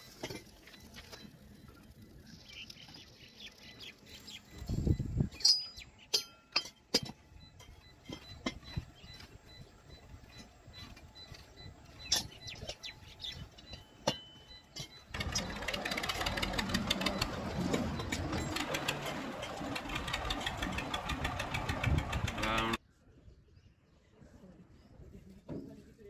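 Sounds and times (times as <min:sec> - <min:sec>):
tractor engine running: 0:07.0 - 0:22.8.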